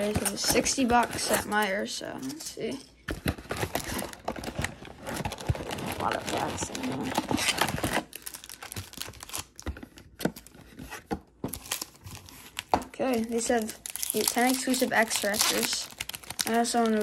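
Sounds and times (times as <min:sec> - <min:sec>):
foil wrappers crinkling: 0:03.4 - 0:10.6, 0:11.5 - 0:17.0.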